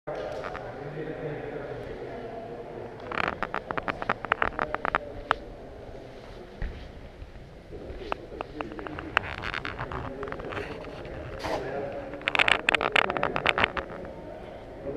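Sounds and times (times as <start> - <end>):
indistinct chatter in a gym hall: 0.1 - 14.9
sharp clicks and clatter: 3.0 - 5.4, 8.4 - 14.1.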